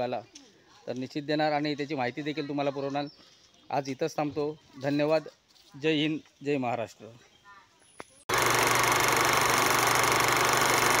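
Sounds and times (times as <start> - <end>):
film projector whirring and clatter: 8.3 - 11.0.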